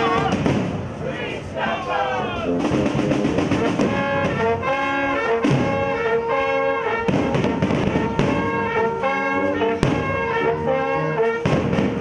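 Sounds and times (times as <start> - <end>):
large samba drums: 0.0 - 0.8, 2.5 - 4.7, 7.0 - 8.8, 11.4 - 12.0
brass street band playing: 0.0 - 12.0.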